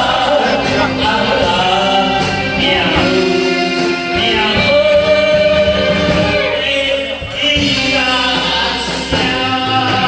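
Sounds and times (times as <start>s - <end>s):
instrumental accompaniment: 0.0s - 10.0s
person singing: 0.0s - 10.0s.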